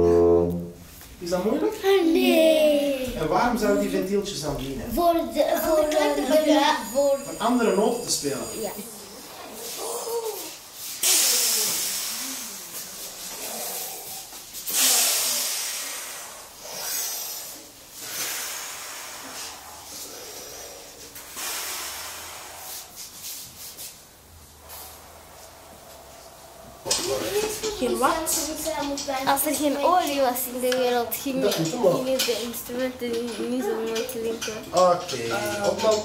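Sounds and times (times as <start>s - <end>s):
group hissing breath: 6.9s - 28.5s.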